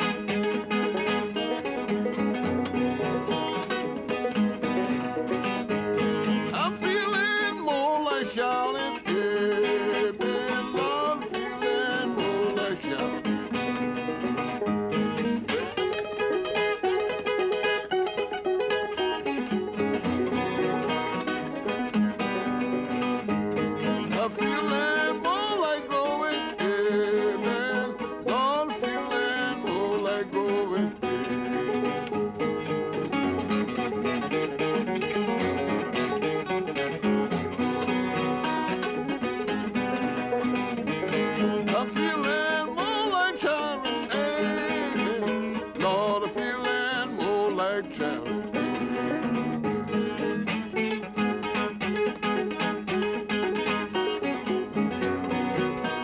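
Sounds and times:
banjo: 0:00.0 - 0:56.0
fingerpicked acoustic guitar: 0:00.0 - 0:56.0.

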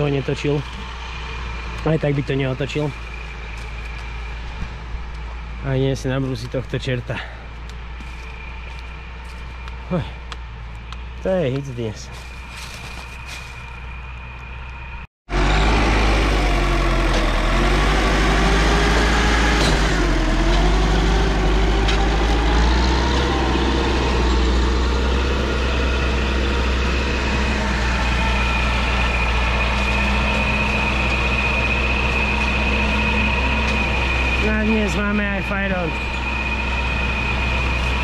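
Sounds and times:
diesel engine running: 0:00.0 - 0:38.0.

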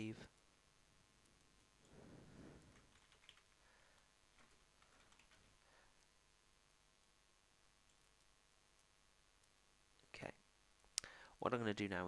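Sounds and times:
soft rustle: 0:01.2 - 0:06.2
keyboard typing: 0:02.6 - 0:05.7.

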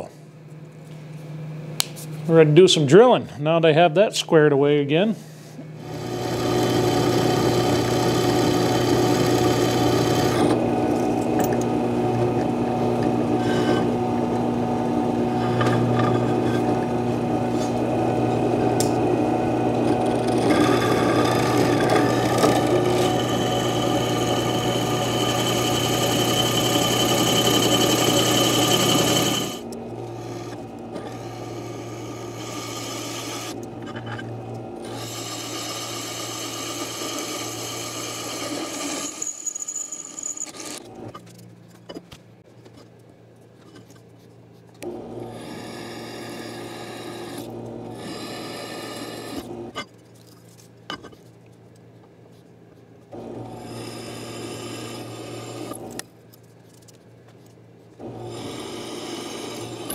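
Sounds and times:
drill press motor hum: 0:05.8 - 0:41.2, 0:44.8 - 0:49.8, 0:53.2 - 0:56.0, 0:58.0 - 0:59.9
drill bit scraping through steel: 0:05.9 - 0:10.6, 0:13.3 - 0:14.0, 0:19.7 - 0:40.8, 0:45.3 - 0:49.8, 0:53.5 - 0:55.9, 0:58.1 - 0:59.9.

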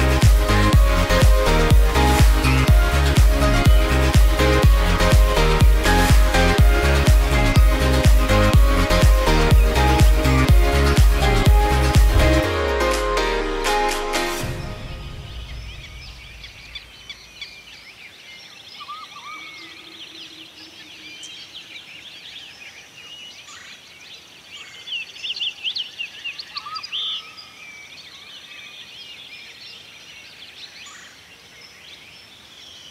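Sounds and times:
birds chirping and trilling: 0:00.0 - 0:13.0, 0:13.6 - 0:32.9.

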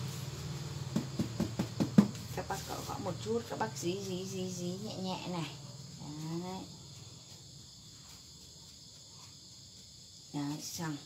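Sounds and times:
crickets chirring: 0:00.0 - 0:11.0
rustling of potting soil: 0:00.0 - 0:11.0.

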